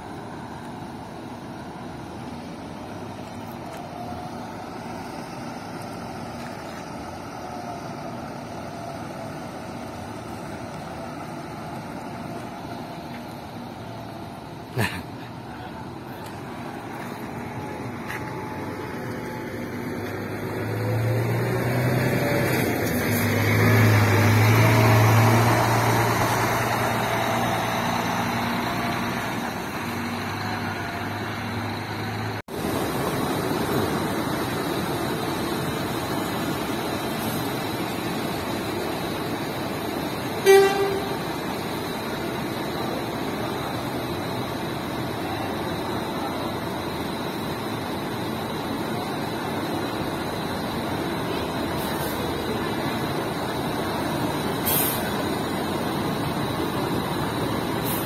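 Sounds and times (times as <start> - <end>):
coach diesel engine running: 0.0 - 58.0
short horn toot: 40.4 - 41.2.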